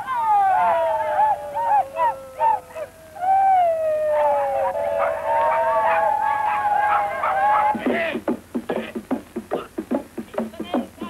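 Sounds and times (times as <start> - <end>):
voices hooting in a chant: 0.0 - 8.2.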